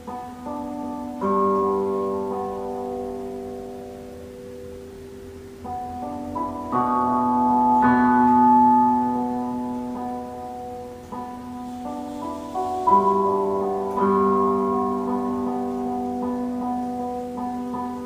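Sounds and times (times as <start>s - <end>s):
slow piano chords: 0.0s - 18.0s.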